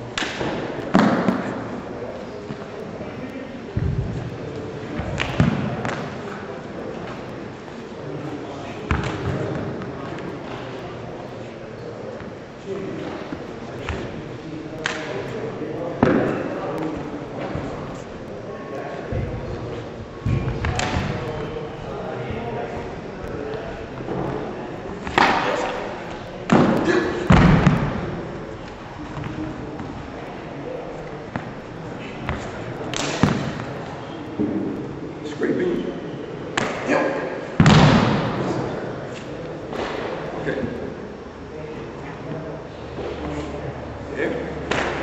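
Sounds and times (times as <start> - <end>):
indistinct talking: 0.0 - 45.0.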